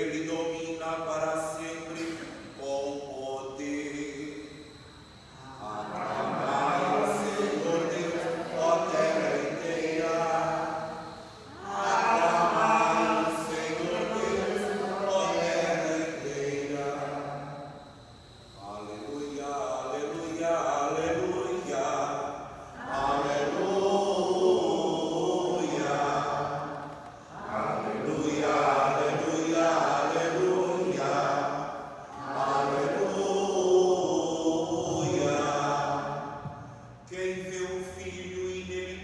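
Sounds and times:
liturgical chant singing: 0:00.0 - 0:39.0.

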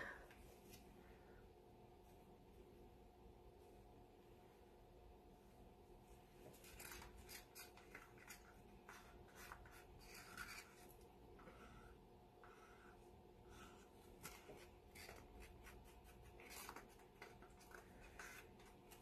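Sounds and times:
faint steady hum: 0:00.0 - 0:19.0
paint stick scraping plastic cups: 0:06.4 - 0:19.0.

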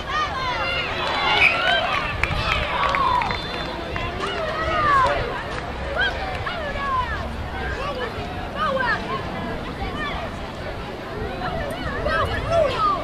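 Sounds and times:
people shouting and calling: 0:00.0 - 0:10.4, 0:11.2 - 0:13.0.

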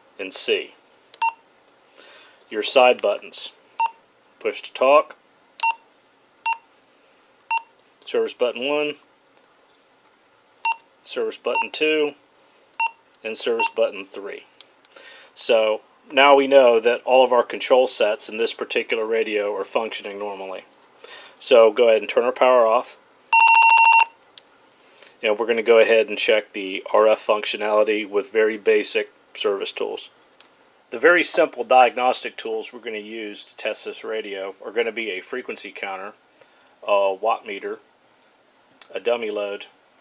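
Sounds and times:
handheld radio short beeps: 0:23.4 - 0:24.1.

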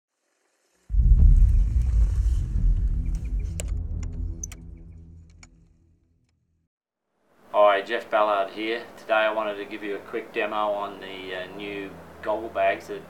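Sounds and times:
deep rumble: 0:00.9 - 0:06.2.

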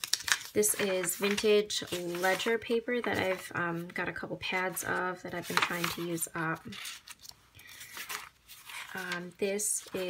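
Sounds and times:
paper pages turning: 0:00.0 - 0:03.9, 0:04.6 - 0:10.0.

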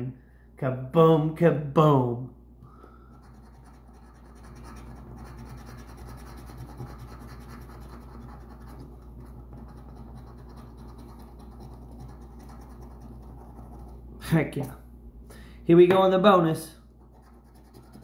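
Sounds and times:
coin scratching lottery ticket: 0:03.2 - 0:14.0, 0:17.0 - 0:18.0.

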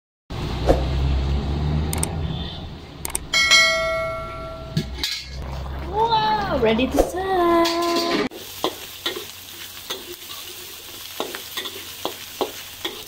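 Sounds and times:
notification bell ding: 0:03.3 - 0:04.8.

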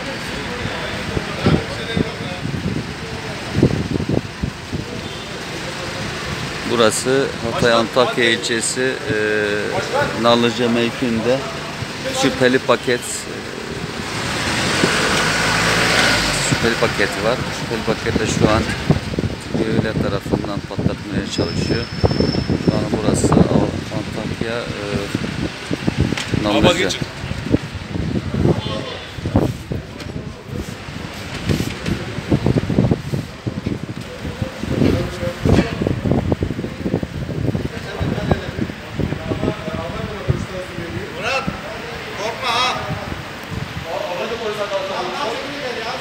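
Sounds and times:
indistinct talking: 0:00.0 - 0:21.9, 0:22.6 - 0:46.0
outdoor background noise: 0:00.0 - 0:46.0
passing motor vehicle: 0:00.0 - 0:46.0.

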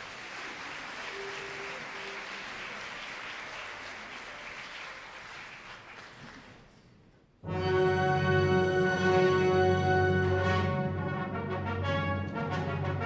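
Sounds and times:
audience applauding: 0:00.0 - 0:06.8.

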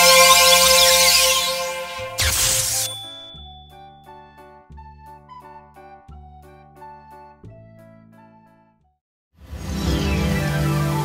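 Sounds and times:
shimmering whoosh: 0:00.0 - 0:03.5
high ding: 0:00.0 - 0:04.2
soft background music: 0:09.5 - 0:11.0.

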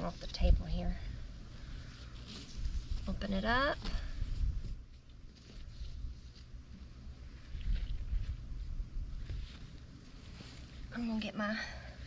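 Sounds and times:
soft rustles of fabric: 0:00.0 - 0:12.0.

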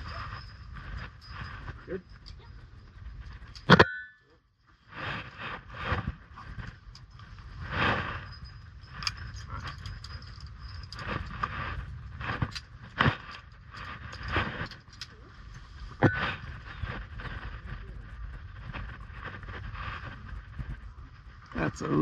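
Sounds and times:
low wind rumble: 0:00.0 - 0:22.0
rope scraping and rustling: 0:04.7 - 0:21.5.

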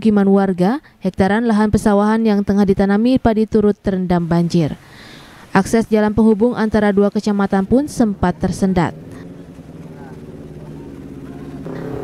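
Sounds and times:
vehicle engine running: 0:07.2 - 0:12.0.

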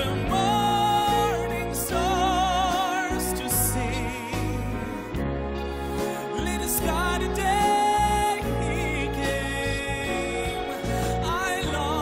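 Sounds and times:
man singing: 0:00.0 - 0:12.0
piano and orchestra: 0:00.0 - 0:12.0.

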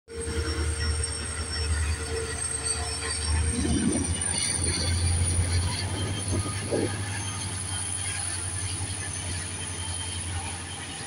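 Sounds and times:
train rumbling past: 0:00.1 - 0:11.0
thin high steady tone: 0:00.2 - 0:11.0.

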